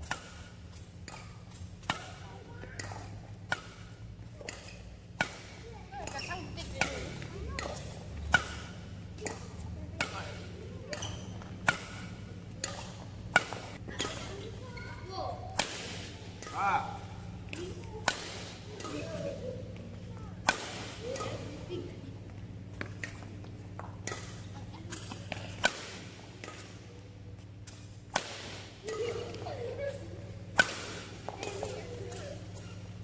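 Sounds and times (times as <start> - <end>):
racquet striking shuttlecock: 0.0 - 14.5, 15.5 - 21.8, 22.4 - 26.9, 27.6 - 33.0.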